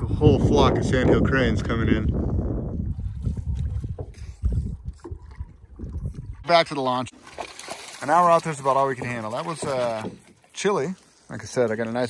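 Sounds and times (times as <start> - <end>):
wind buffeting microphone: 0.0 - 6.7.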